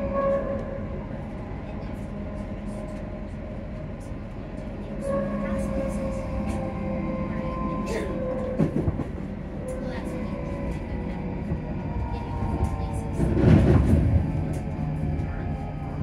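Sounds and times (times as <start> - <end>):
train rumble: 0.0 - 16.0
train running noise: 0.0 - 16.0.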